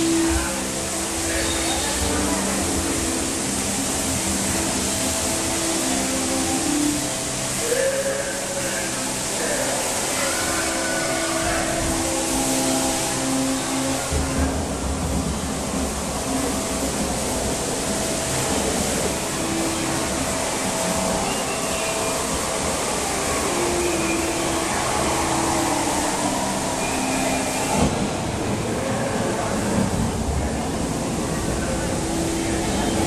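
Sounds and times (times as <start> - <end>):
rushing water: 0.0 - 33.0
slow music of held notes: 17.8 - 27.9.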